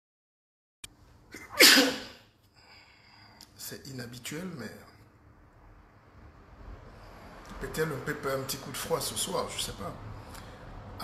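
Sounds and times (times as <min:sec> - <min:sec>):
man sneezing loudly: 0:01.3 - 0:02.3.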